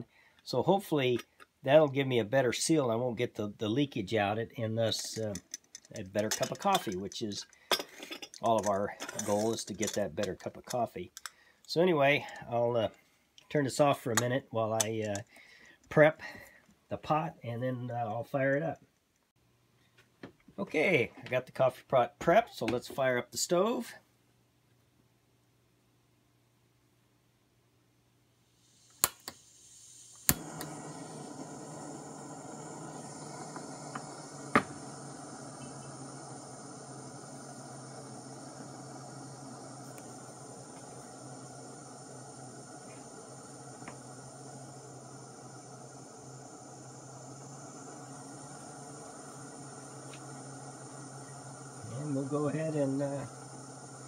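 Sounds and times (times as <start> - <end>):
gas valve hissing: 0.0 - 13.0, 13.8 - 16.6, 28.5 - 54.0
gas burner rushing: 4.9 - 10.8, 28.6 - 54.0
igniter clicks: 14.1 - 15.4, 28.9 - 54.0.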